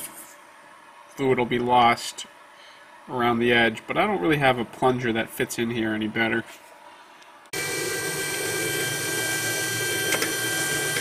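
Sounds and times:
stepper motor whine: 7.6 - 11.0.

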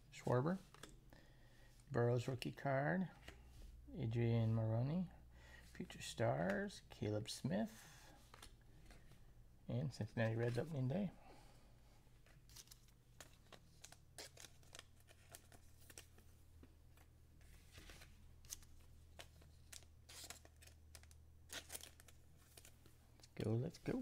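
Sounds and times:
trading cards clicking and rustling: 12.4 - 16.3, 17.7 - 24.0.

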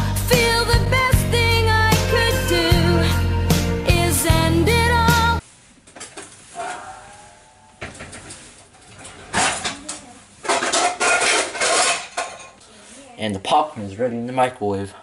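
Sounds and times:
song playing: 0.0 - 5.4
kitchen handling clatter and rustling: 7.8 - 12.6.

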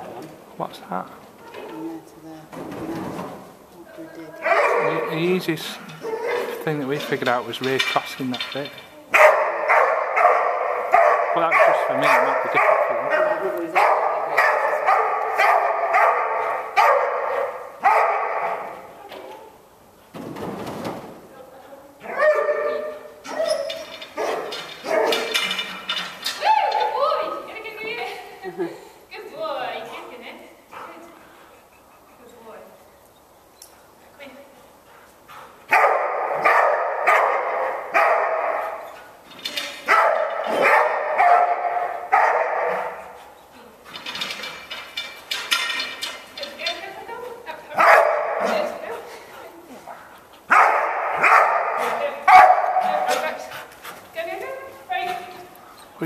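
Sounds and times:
dog barking: 4.4 - 5.2, 6.0 - 6.6, 9.1 - 18.8, 22.0 - 23.6, 24.2 - 25.4, 35.7 - 38.8, 39.9 - 43.2, 47.8 - 48.8, 50.5 - 53.4.

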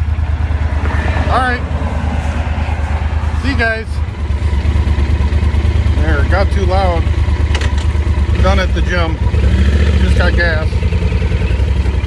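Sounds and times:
motorcycle engine idling: 0.0 - 12.0.

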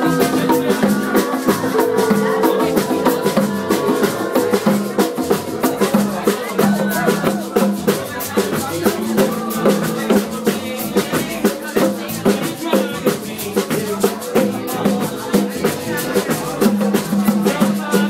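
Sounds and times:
congas: 0.0 - 18.0
drum kit groove: 0.0 - 18.0
shaker: 0.0 - 18.0.

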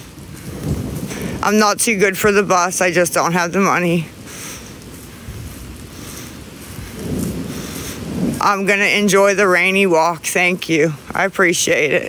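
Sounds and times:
low rumble: 0.0 - 9.7
rain falling on microphone: 0.0 - 12.0.

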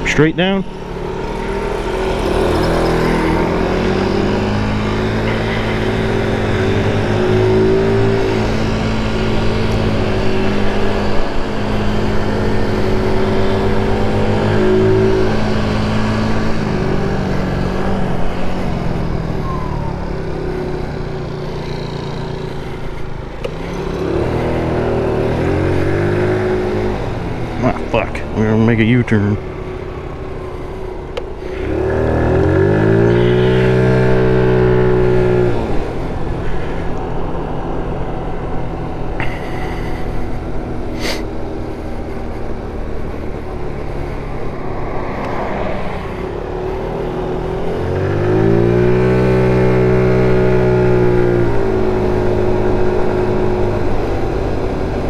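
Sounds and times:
scooter engine revving: 0.0 - 28.6, 29.4 - 55.0.

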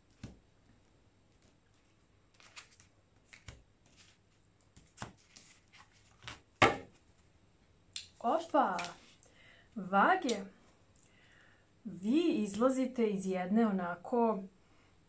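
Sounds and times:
cards tapping on tabletop: 6.6 - 6.9.

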